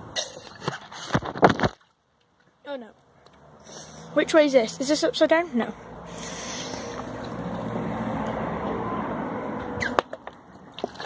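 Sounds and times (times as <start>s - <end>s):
loud gulping and slurping: 6.1s - 7.9s.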